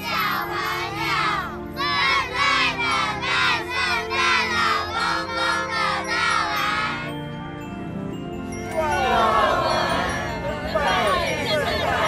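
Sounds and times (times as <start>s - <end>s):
children singing in unison: 0.0s - 7.1s
backing music: 0.0s - 12.0s.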